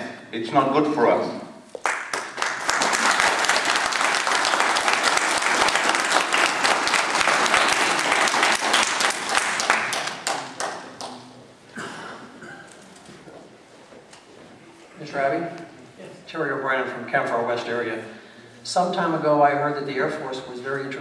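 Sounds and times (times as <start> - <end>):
audience applauding: 1.8 - 11.2.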